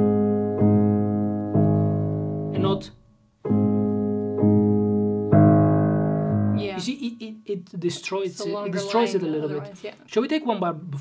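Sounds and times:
piano chords ringing: 0.0 - 9.7.

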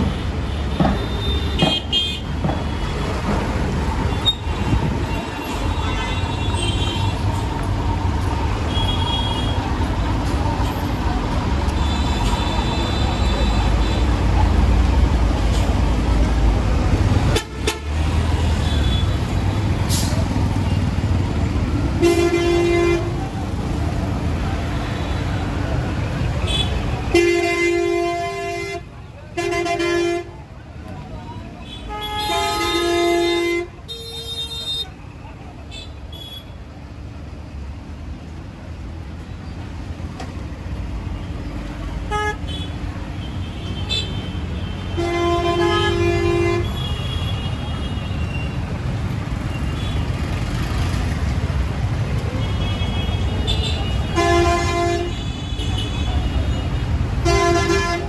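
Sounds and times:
heavy traffic: 0.0 - 58.0
large vehicle engine rumbling: 0.0 - 58.0
vehicle horns: 0.1 - 3.3, 4.0 - 7.4, 8.6 - 9.7, 17.2 - 21.2, 21.9 - 23.4, 26.2 - 30.4, 31.6 - 35.0, 42.0 - 48.7, 52.2 - 58.0.

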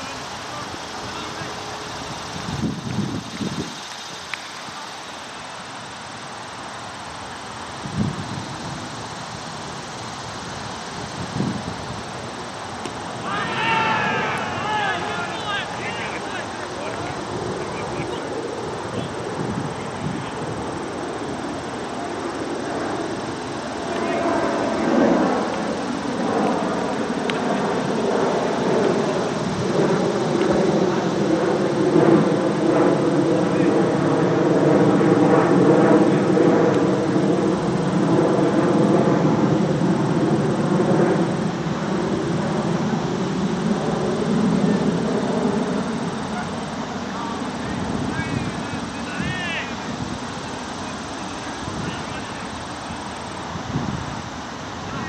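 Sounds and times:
steady drone: 0.0 - 53.4
men talking and calling out: 12.4 - 22.0, 46.0 - 53.0.

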